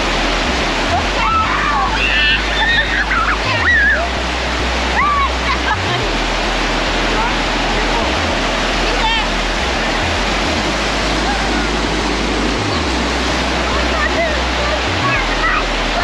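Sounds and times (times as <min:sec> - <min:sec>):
water rushing over stone: 0:00.0 - 0:16.0.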